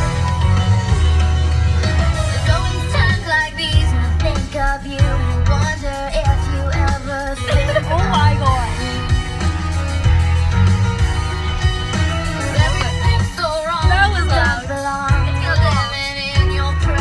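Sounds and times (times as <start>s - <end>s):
pop song in a car: 0.0s - 17.0s
strong steady bass: 0.0s - 17.0s.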